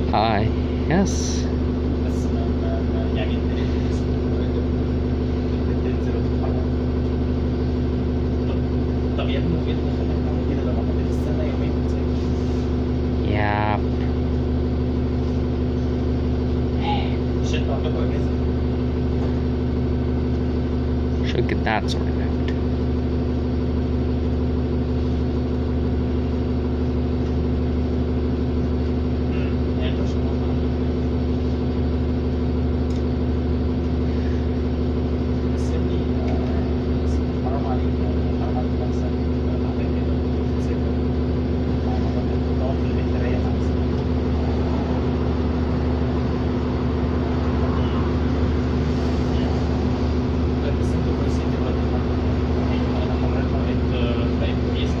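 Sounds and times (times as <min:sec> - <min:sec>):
bus diesel engine idling: 0:00.0 - 0:55.0.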